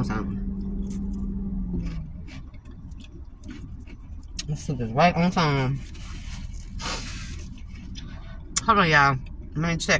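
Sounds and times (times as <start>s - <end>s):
low steady hum: 0.0s - 9.9s
rustling scrape: 5.6s - 8.0s.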